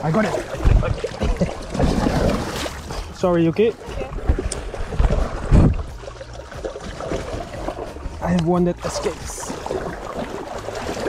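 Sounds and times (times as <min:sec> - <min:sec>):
water splashing and sloshing: 0:00.0 - 0:11.0
heavy low thump: 0:04.2 - 0:05.9.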